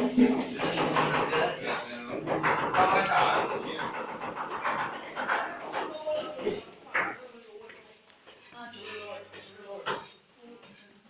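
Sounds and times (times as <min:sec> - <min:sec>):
teenagers chattering: 0:00.0 - 0:11.0.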